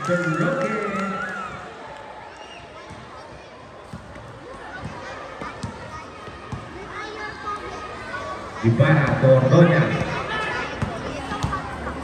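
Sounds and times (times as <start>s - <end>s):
low chatter of voices: 2.2s - 12.0s
basketball bouncing on hard court: 3.9s - 6.7s, 9.9s - 11.7s.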